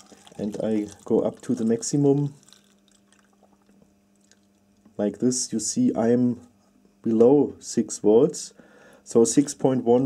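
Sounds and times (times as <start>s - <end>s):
water pouring into plastic cup: 0.0s - 4.7s.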